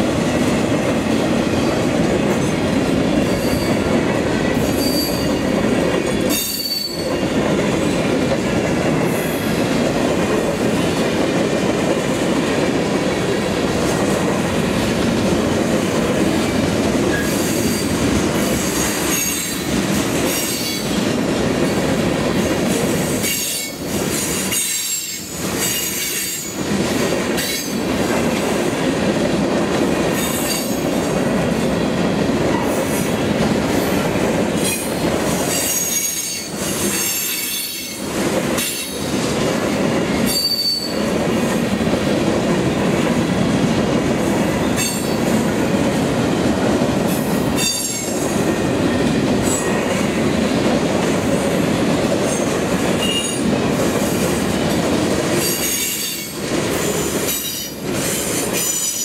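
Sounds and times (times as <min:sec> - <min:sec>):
steel wheels rumbling on rails: 0:00.0 - 0:59.0
high-pitched wheel squeals: 0:04.8 - 0:05.4, 0:06.3 - 0:07.1, 0:40.3 - 0:41.0.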